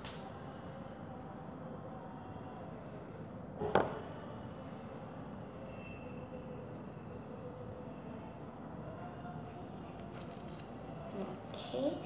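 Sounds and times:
room noise with faint hum: 0.0 - 12.0.

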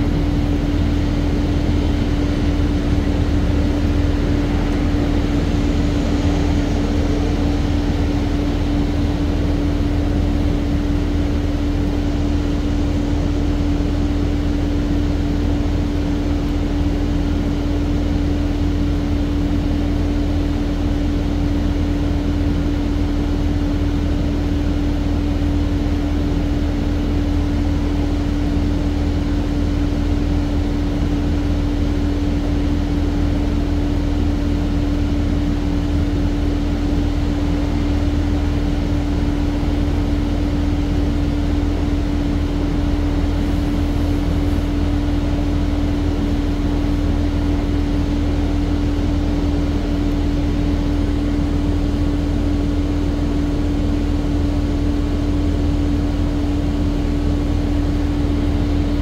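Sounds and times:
bus engine drone: 0.0 - 59.0.

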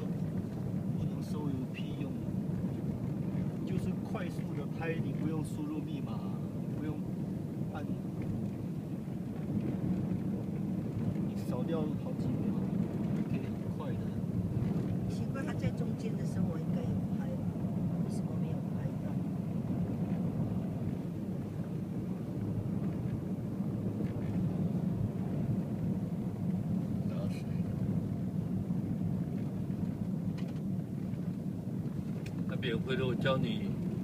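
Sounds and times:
car road and engine rumble: 0.0 - 34.0.

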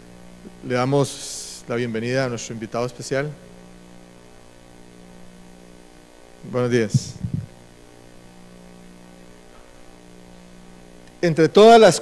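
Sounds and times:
electrical mains hum: 0.0 - 12.0
short low thumps: 6.9 - 7.6.

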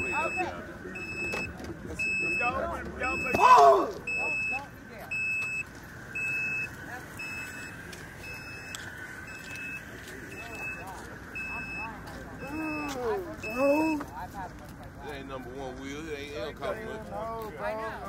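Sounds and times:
vehicle warning beeps: 0.0 - 14.3
voices talking quietly: 0.0 - 18.0.

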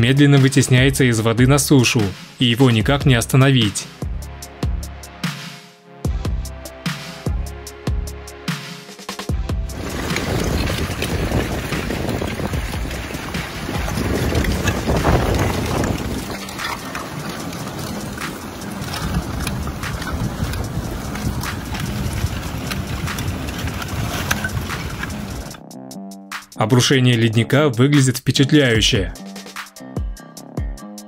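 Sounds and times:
ice sheets grinding and rustling: 9.6 - 25.6
ice shards clinking and cracking: 9.7 - 25.6.

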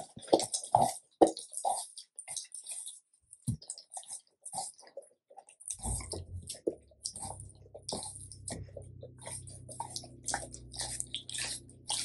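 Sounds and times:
dog licking and eating meat: 0.0 - 12.0
low steady rumble: 5.8 - 12.0.

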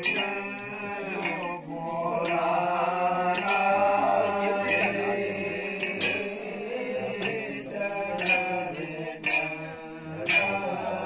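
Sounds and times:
man chanting: 0.0 - 11.0
sharp percussion strokes: 0.0 - 11.0.

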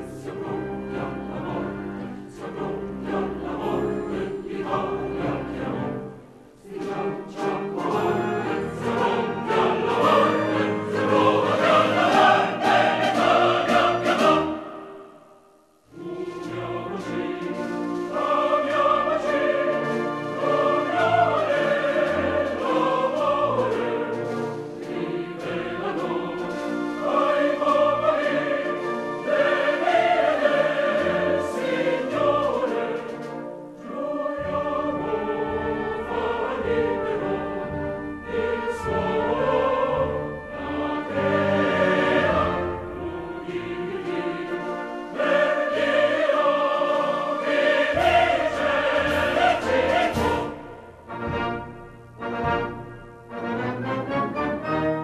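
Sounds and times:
orchestral music with choir: 0.0 - 55.0.

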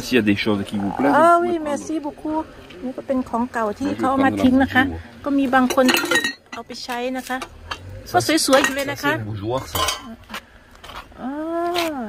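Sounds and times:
glassware clinking: 5.6 - 6.8, 8.4 - 10.2.

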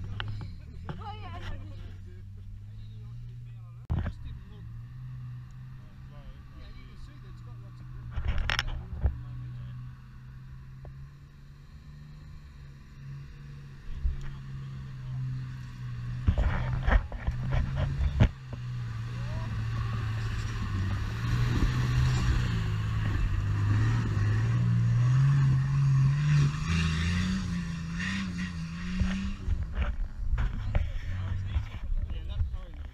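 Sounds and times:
engine working at low revs: 0.0 - 32.9.

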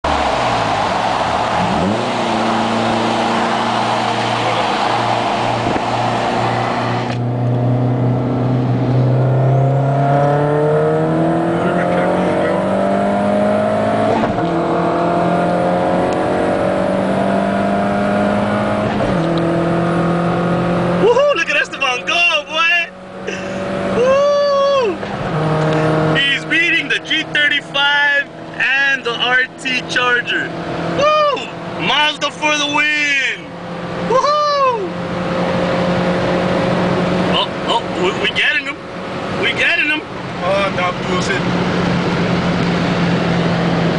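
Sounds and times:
car engine accelerating hard: 0.0 - 43.9
people whooping and shouting: 0.1 - 5.6, 24.0 - 25.0, 31.0 - 31.5, 34.1 - 34.9.

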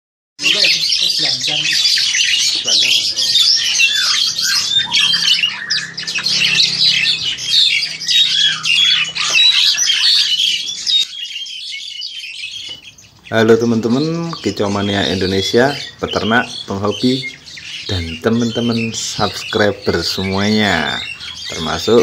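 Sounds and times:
starling singing: 0.4 - 22.0.

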